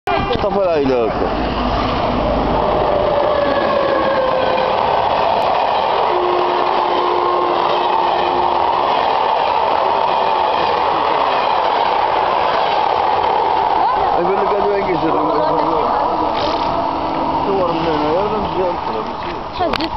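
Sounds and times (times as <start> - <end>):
train wheels rushing on rails: 0.1 - 19.9.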